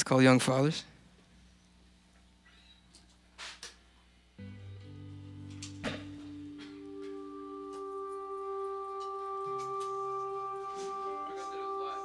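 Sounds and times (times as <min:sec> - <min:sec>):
band sustained chord: 0:04.4 - 0:12.0.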